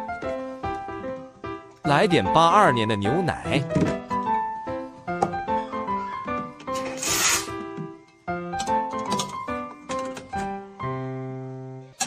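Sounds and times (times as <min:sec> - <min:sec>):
piano-like background music: 0:00.0 - 0:12.0.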